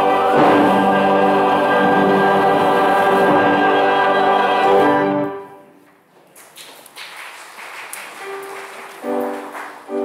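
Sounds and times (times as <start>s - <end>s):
congregation applauding: 6.3s - 10.0s.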